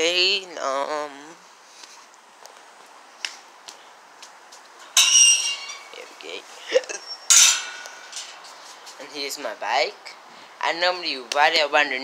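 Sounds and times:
rattling metallic scrapes: 0:05.0 - 0:06.1, 0:07.1 - 0:09.0.

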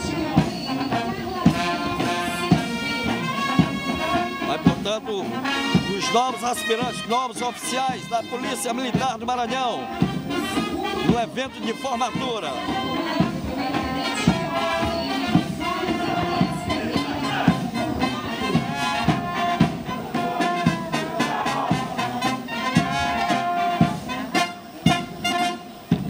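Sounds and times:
brass marching band: 0:00.0 - 0:26.0
steady drum beat: 0:00.0 - 0:26.0.

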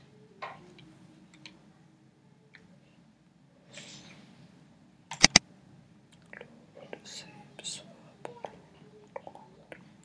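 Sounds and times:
person whispering: 0:06.8 - 0:10.0.

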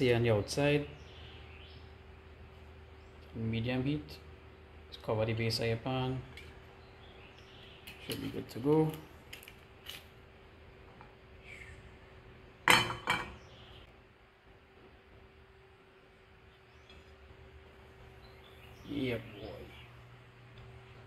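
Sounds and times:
faint steady hum: 0:00.0 - 0:21.0
frying pan clanking on metal grate: 0:12.6 - 0:13.4.

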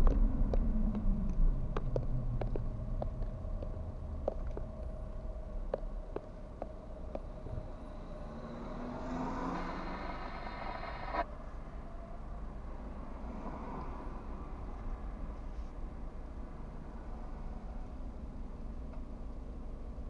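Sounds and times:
steady low rumble: 0:00.0 - 0:09.0, 0:09.6 - 0:20.0
passing car engine: 0:07.1 - 0:15.4.

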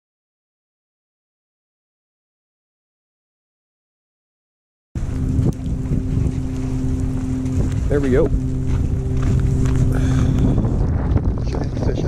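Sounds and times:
low engine drone: 0:05.0 - 0:12.0
wind buffeting microphone: 0:05.0 - 0:12.0.

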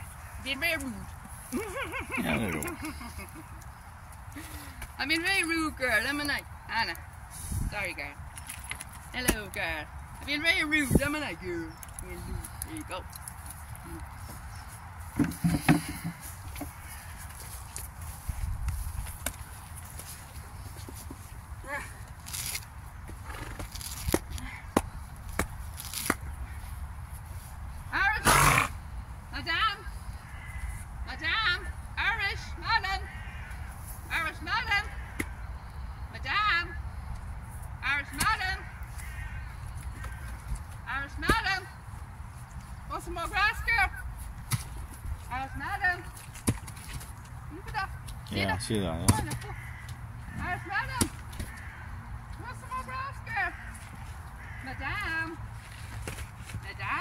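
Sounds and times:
wind rumble on microphone: 0:07.4 - 0:08.1
grass tearing snaps: 0:22.1 - 0:22.7, 0:23.4 - 0:24.4, 0:25.4 - 0:26.3.

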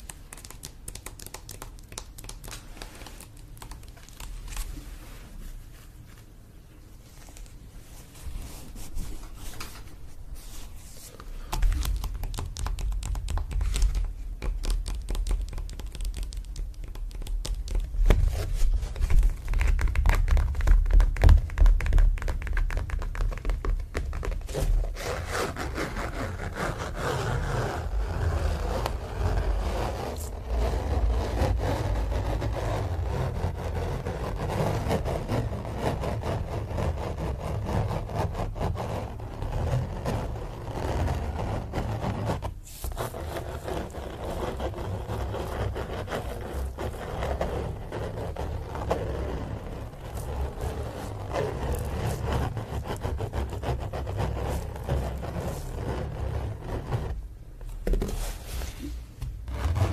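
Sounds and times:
fingers scratching canvas: 0:00.0 - 0:04.8, 0:10.5 - 0:59.9.

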